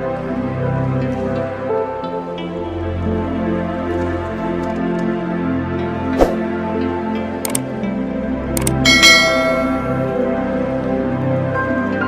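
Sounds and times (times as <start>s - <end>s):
background music: 0.0s - 12.0s
mouse clicks: 7.4s - 7.6s
bell chime: 8.8s - 10.2s.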